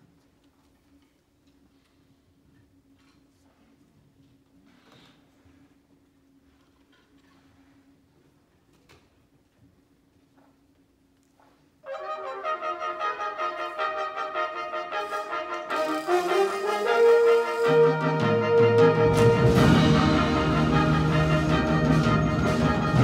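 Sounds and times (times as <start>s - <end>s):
symphonic band playing: 11.8s - 23.0s.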